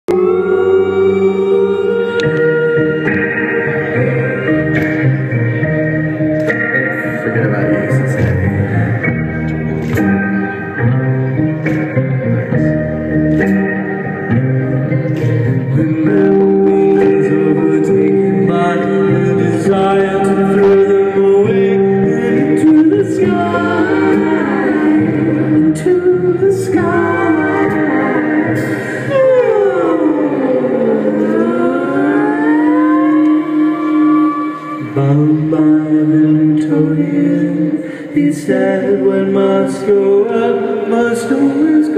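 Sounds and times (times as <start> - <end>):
sustained chords: 0.1 - 38.2
plucked guitar: 0.1 - 41.9.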